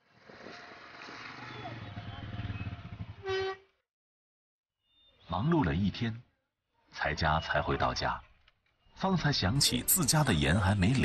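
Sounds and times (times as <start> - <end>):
horn honk: 3.1 - 3.8.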